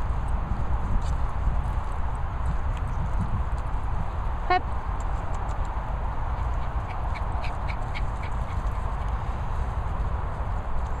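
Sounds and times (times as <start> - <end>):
wind rumble: 0.0 - 11.0.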